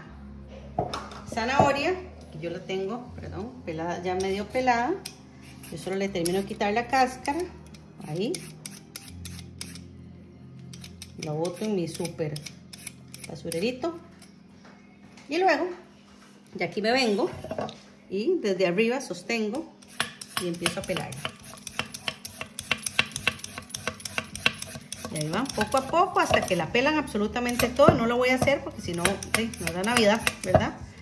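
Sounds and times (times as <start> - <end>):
peeler scraping carrot: 5.4 - 9.9, 10.7 - 13.8, 19.8 - 26.7, 28.9 - 30.5.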